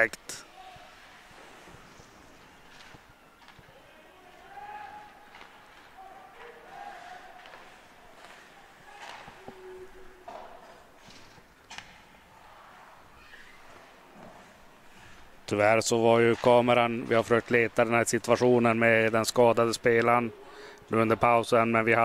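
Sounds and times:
hockey sticks and puck clacking: 1.7 - 12.2, 13.3 - 20.2.

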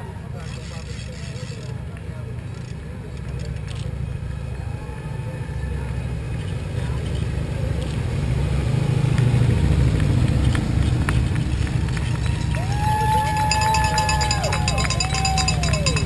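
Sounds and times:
motorcycle engines rumbling: 0.0 - 16.0.

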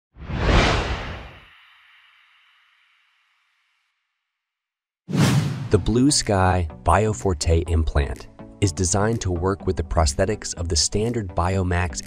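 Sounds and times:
whoosh rush: 0.2 - 1.5, 5.1 - 5.8.

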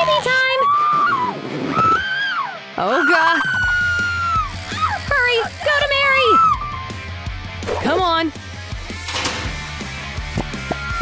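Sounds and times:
woman wailing in pain: 6.0 - 7.0.

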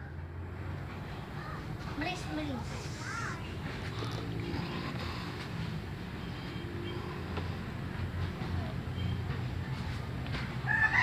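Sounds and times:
rooster crowing: 10.6 - 11.0.

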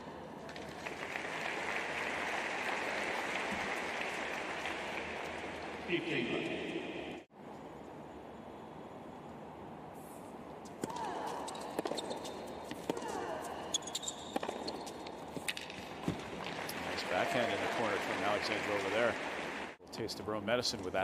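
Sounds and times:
low crowd ambience: 15.2 - 21.0.

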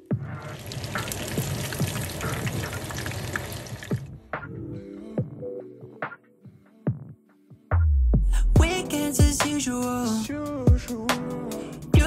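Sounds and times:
cutlets sizzling in hot oil: 0.4 - 3.9
background music with beat: 3.8 - 12.0.

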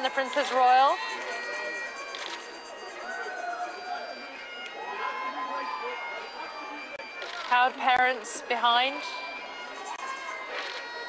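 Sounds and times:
bagpipes playing: 0.0 - 11.0.

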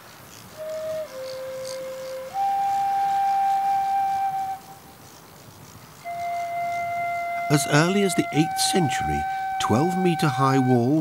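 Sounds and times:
flute playing long held notes: 0.5 - 5.0, 6.0 - 11.0.

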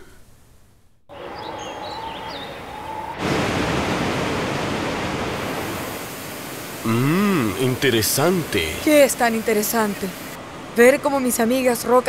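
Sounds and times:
water sprays rushing: 3.2 - 10.4.

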